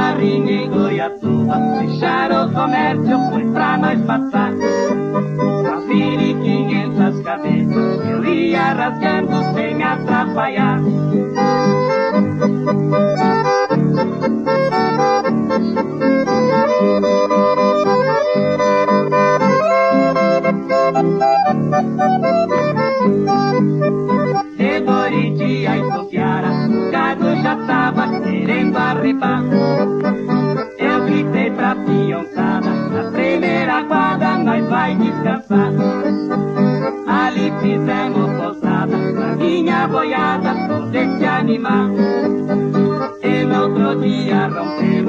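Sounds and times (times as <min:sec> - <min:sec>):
accordion melody: 0:00.0 - 0:45.0
guitar accompaniment: 0:00.0 - 0:45.0.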